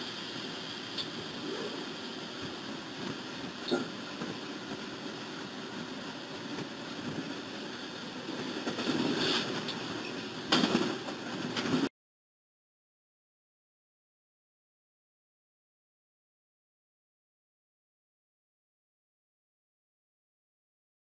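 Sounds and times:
locomotive cab rumble and hiss: 0:00.0 - 0:11.9.

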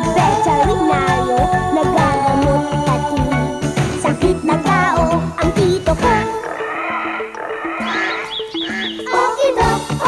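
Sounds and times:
theme music held notes: 0:05.0 - 0:10.0
music beat: 0:05.4 - 0:10.0.

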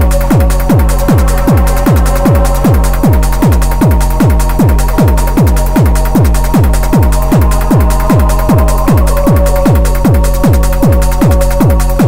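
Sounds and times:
distorted kick drum: 0:00.0 - 0:12.0
sustained synth tone: 0:00.0 - 0:12.0.

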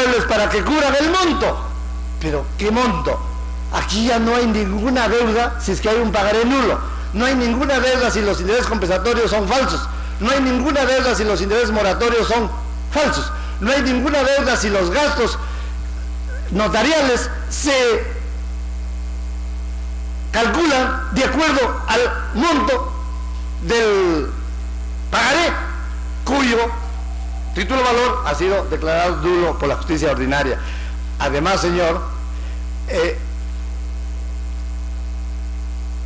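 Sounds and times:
faint high steady tones: 0:00.0 - 0:36.0
low electrical mains hum: 0:00.0 - 0:36.0.

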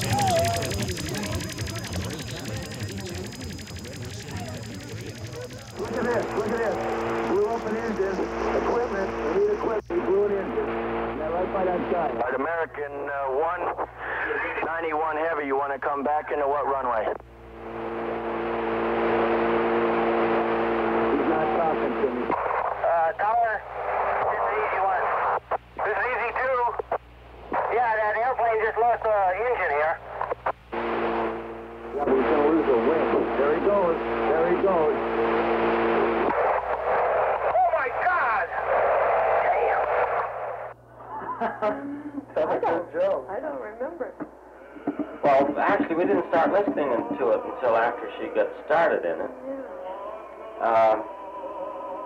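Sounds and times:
radio-like voices: 0:00.0 - 0:52.0.

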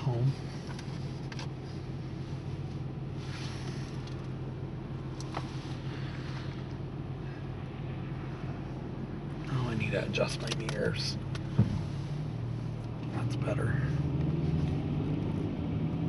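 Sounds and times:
car engine hum: 0:00.0 - 0:16.0
road noise: 0:00.0 - 0:16.0.

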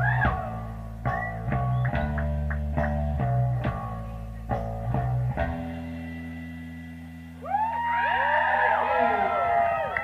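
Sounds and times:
electric guitars playing: 0:00.0 - 0:10.0
low sustained bass notes: 0:00.0 - 0:10.0.

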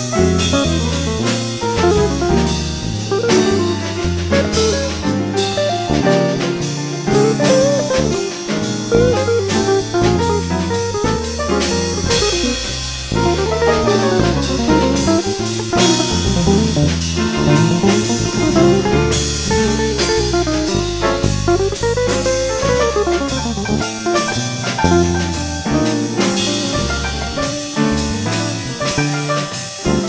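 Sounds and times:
bass line: 0:00.0 - 0:30.0
drum kit cymbals: 0:00.0 - 0:30.0
jazz guitar melody: 0:00.0 - 0:30.0.

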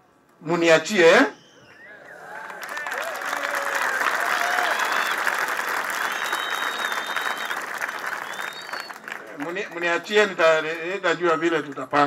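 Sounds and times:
audience applauding: 0:02.0 - 0:11.9.

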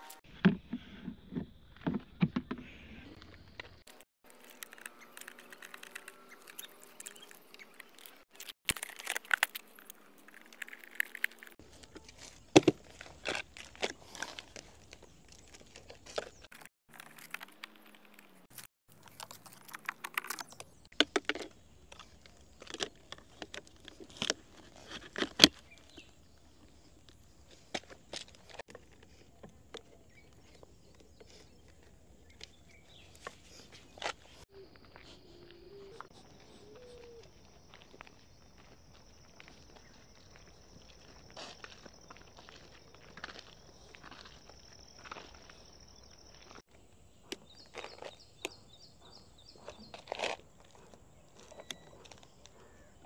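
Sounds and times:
insects droning: 0:36.0 - 0:50.0.

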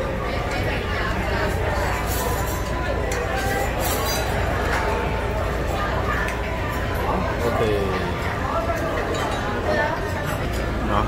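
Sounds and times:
restaurant chatter: 0:00.0 - 0:11.0
tableware clinking: 0:01.8 - 0:05.0, 0:08.7 - 0:10.8.

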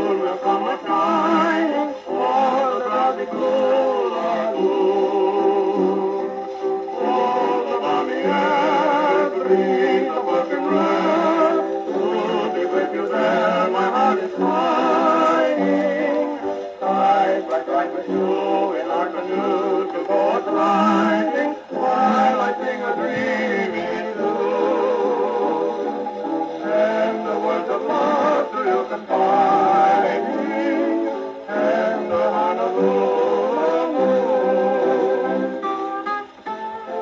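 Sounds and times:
gramophone playing band record: 0:00.0 - 0:37.0.

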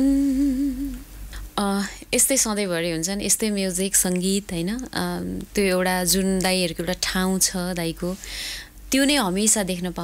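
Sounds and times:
person humming a held note: 0:00.0 - 0:01.0.

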